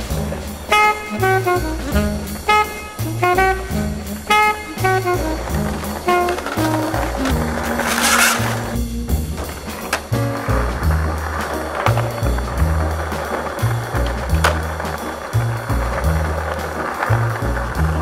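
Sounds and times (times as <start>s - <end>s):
jazz music with piano and bass: 0.0s - 18.0s
skateboard clacks: 0.0s - 18.0s
skateboard wheels rolling on stone: 0.0s - 18.0s.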